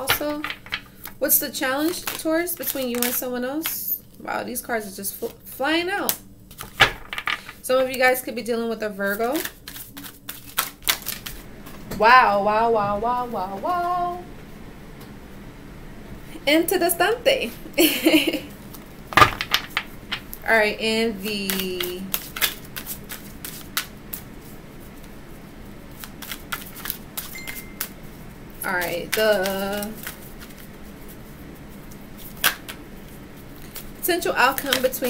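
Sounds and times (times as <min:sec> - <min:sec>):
cards being shuffled: 0:00.0 - 0:04.0, 0:06.5 - 0:07.6, 0:09.0 - 0:11.5, 0:18.6 - 0:20.4, 0:21.2 - 0:25.2, 0:25.9 - 0:32.8, 0:33.5 - 0:35.0.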